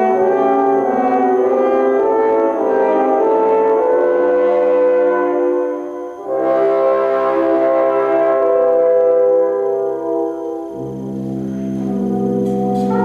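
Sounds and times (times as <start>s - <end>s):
brass choir playing chords: 0.0s - 13.0s
low brass: 0.0s - 13.0s.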